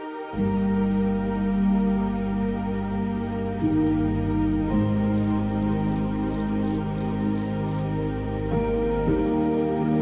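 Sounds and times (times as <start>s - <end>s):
slow ambient keyboard music: 0.0s - 10.0s.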